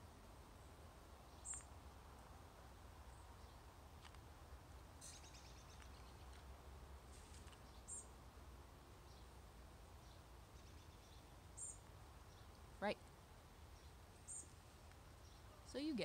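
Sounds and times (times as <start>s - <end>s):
faint outdoor rumble: 0.0s - 16.0s
high bird chirps: 5.0s - 6.3s.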